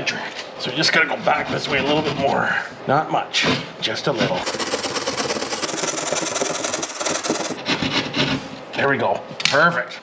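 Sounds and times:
hand saw rasping through drywall: 1.2 - 2.5, 4.1 - 8.5.

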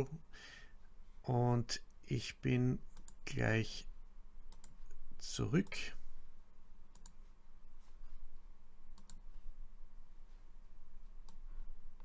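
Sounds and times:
faint low hum: 0.0 - 12.0
computer mouse clicks: 2.9 - 3.2, 4.5 - 5.0, 6.9 - 7.2, 8.9 - 9.4, 11.2 - 11.5.

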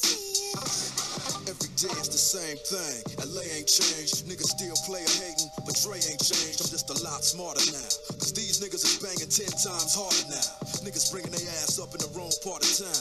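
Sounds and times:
hip hop beat: 0.0 - 13.0
person rapping: 0.0 - 13.0.

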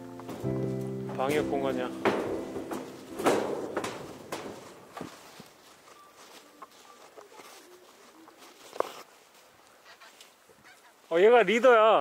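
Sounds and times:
footsteps on hard walkway: 0.0 - 9.6.

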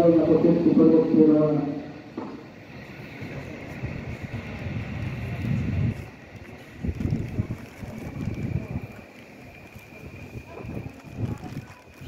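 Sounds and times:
electric train pulling away: 0.0 - 12.0.

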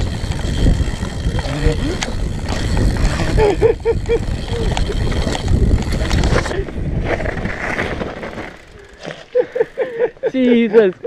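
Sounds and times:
wind rushing over microphone: 0.0 - 8.2
bike clicks and knocks: 0.0 - 9.4
tyres rumbling over dirt: 0.0 - 9.5.

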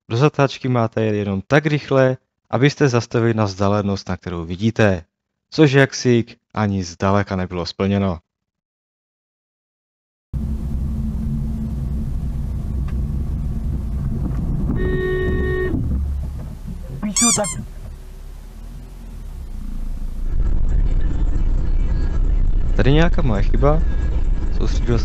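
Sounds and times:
car engine and tyre rumble: 10.4 - 25.0
car horn: 14.7 - 16.2, 16.8 - 18.1.

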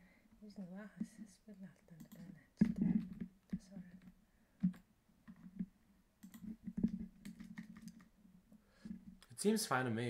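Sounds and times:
mouse and keyboard clicks: 1.5 - 8.1.

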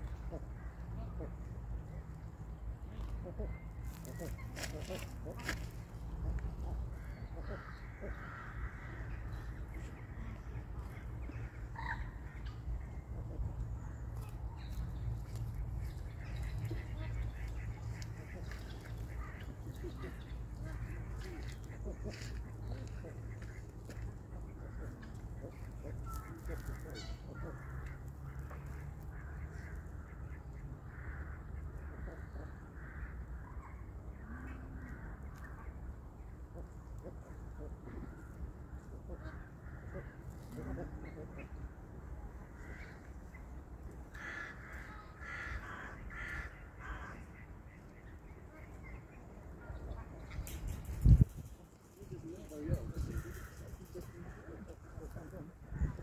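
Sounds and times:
steady low rumble: 0.0 - 33.0.

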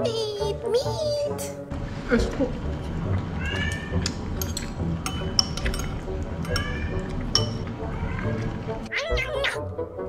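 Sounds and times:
chopsticks clinking on ceramic bowl: 4.0 - 7.7.

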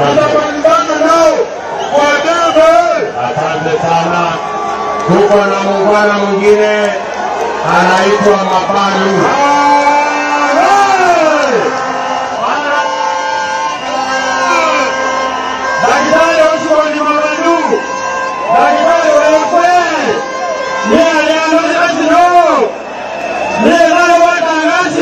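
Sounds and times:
music: 12.4 - 22.2.

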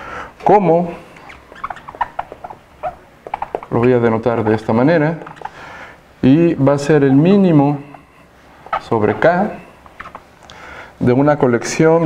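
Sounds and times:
marker squeaking on whiteboard: 0.9 - 10.4.

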